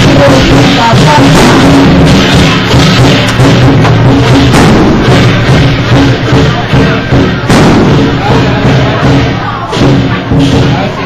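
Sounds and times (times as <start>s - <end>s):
crowd voices: 0.0s - 11.0s
cymbal clashes: 0.0s - 11.0s
drum beating a rhythm: 0.0s - 11.0s.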